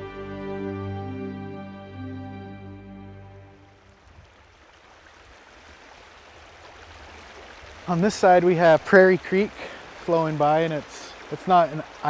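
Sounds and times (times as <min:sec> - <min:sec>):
creek running over riffles: 0:03.6 - 0:12.0.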